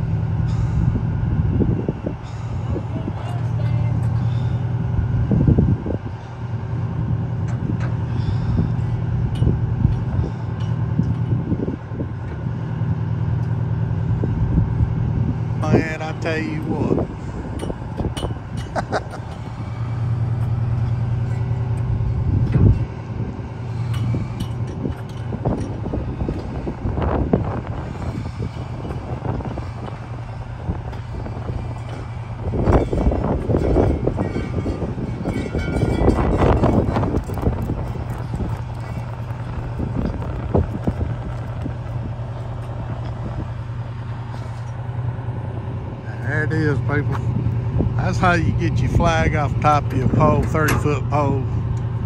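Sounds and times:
diesel engine running: 0.0s - 52.0s.

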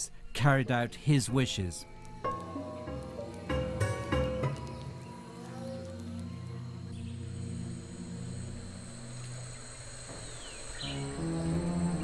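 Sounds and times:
slow background music: 0.0s - 12.0s
high insect-like hum: 1.4s - 12.0s.

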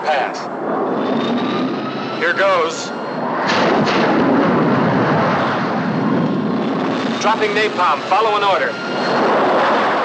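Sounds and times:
jet engine noise: 0.0s - 10.0s
rockets firing: 3.2s - 8.0s.

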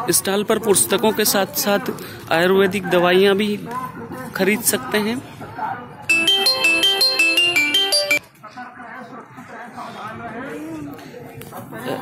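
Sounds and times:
electronic ringtone melody: 6.1s - 8.2s.

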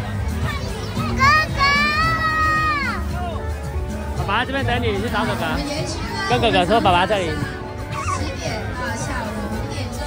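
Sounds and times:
crowd chatter: 0.0s - 10.0s
music: 0.0s - 10.0s
child squealing: 7.9s - 8.4s.

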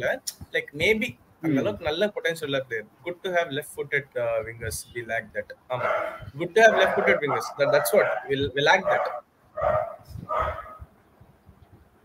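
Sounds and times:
dog barking: 5.8s - 10.8s.

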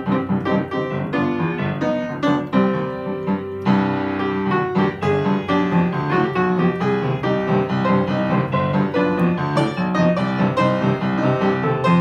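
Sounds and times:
boogie-woogie upright piano: 0.0s - 12.0s.

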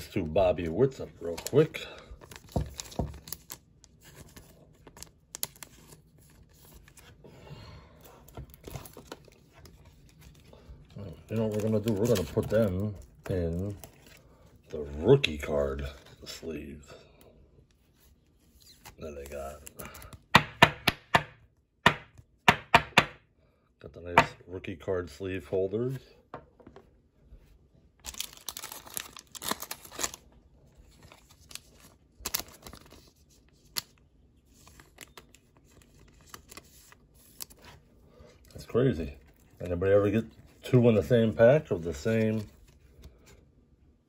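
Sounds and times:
plastic sleeve crinkling: 0.4s - 7.2s, 8.1s - 16.4s, 28.0s - 43.3s.

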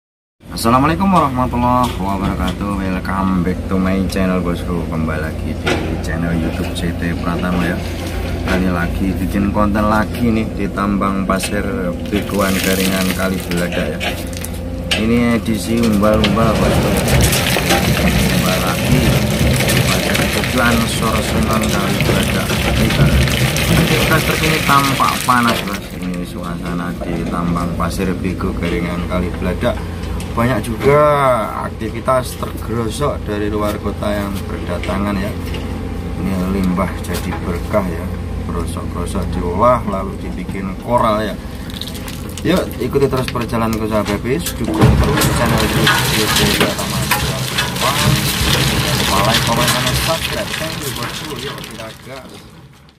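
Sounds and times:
man talking: 0.5s - 14.2s, 14.9s - 35.4s, 36.2s - 41.5s, 42.3s - 52.5s
truck engine idling: 0.6s - 52.9s
loud rough noise: 3.2s - 39.5s, 40.1s - 52.9s.

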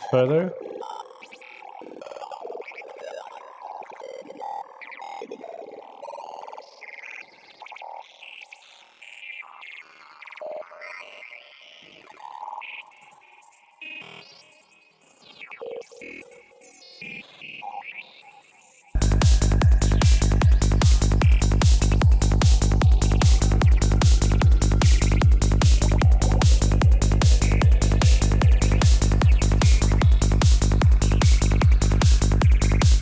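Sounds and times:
psytrance music: 0.0s - 6.3s, 19.0s - 33.0s
synth blips and swells: 19.0s - 33.0s.

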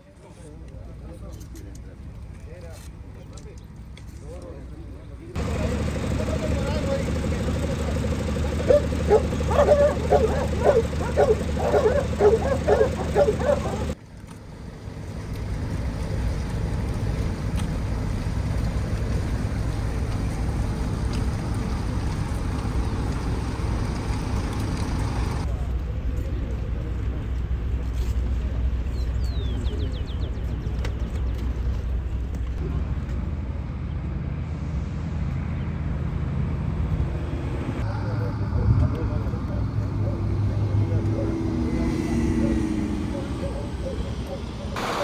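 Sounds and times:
voices shouting short calls: 8.0s - 14.0s
hiss: 44.8s - 45.0s.

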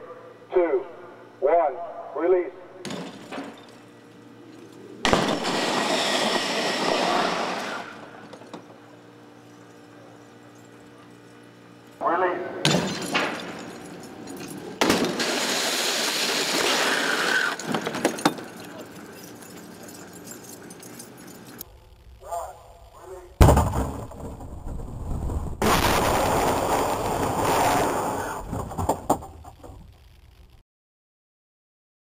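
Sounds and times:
loud crash: 5.1s - 8.1s, 14.8s - 18.0s, 23.4s - 29.8s.

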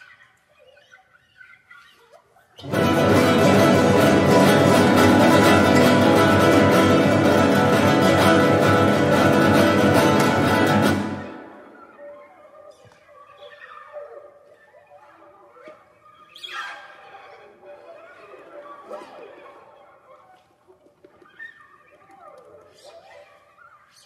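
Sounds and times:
plucked string ensemble chords: 2.6s - 11.8s.

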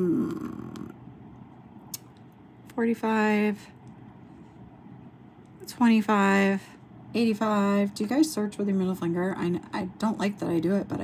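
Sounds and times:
woman humming hmm: 0.0s - 1.0s.

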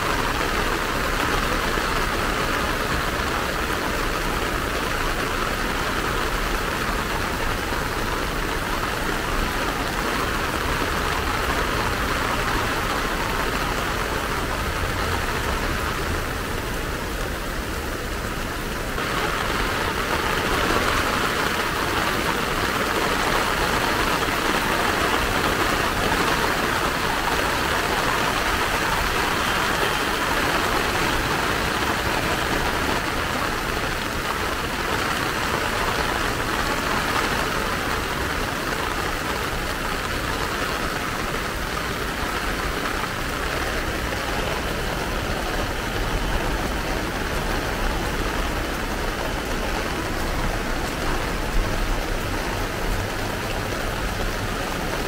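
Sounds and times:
heavy rain on paving and trees: 0.0s - 55.0s.

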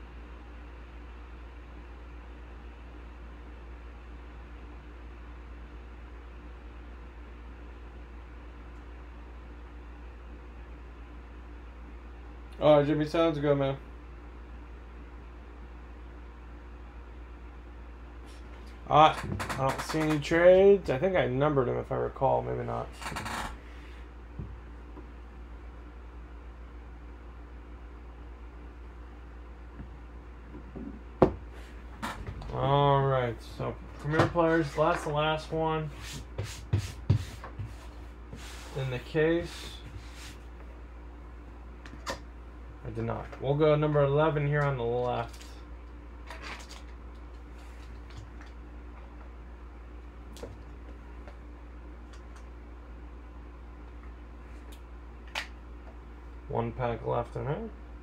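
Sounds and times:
low electrical hum: 0.0s - 58.0s.

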